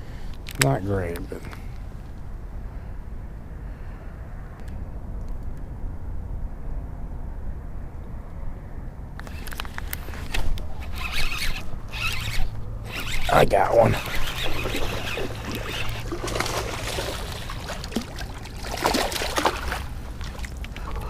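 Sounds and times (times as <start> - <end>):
fishing reel clicking: 10.3 - 16.1.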